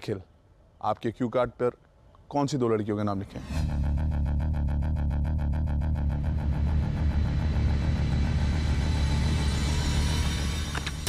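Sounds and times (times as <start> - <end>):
low synth drone: 3.2 - 11.0
ticking pulse: 3.5 - 11.0.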